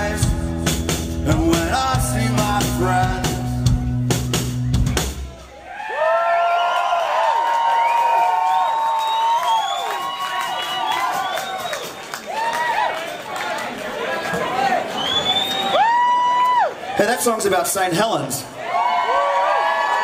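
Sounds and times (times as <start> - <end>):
rock band playing: 0.0 - 5.6
crowd cheering and whooping: 5.4 - 17.0, 18.6 - 20.0.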